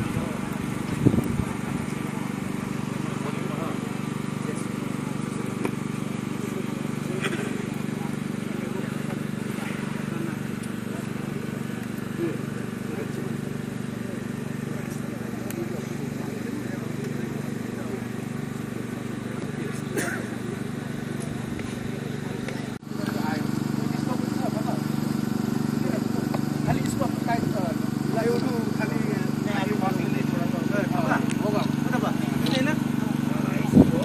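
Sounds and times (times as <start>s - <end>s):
crowd voices: 0.0s - 34.0s
engine hum: 0.0s - 34.0s.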